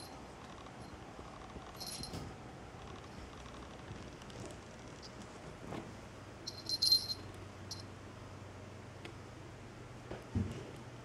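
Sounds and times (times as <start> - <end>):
small bell jingling: 1.8 - 2.2, 6.4 - 7.9.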